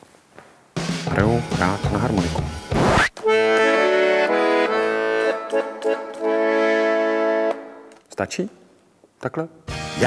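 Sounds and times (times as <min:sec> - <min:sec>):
accordion playing chords: 0:00.8 - 0:07.9.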